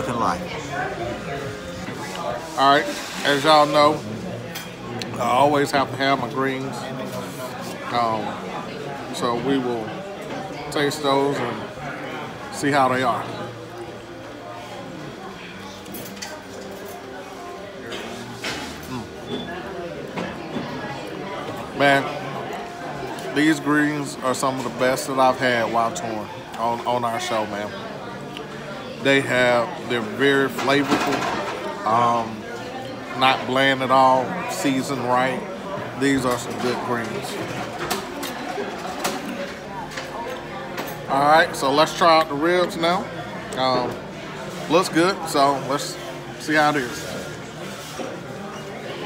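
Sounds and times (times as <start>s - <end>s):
restaurant chatter: 0.0s - 49.0s.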